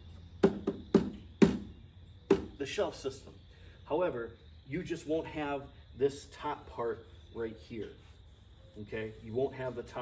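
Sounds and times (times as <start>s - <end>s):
hollow knocks on saddlebag: 0.4s - 1.7s.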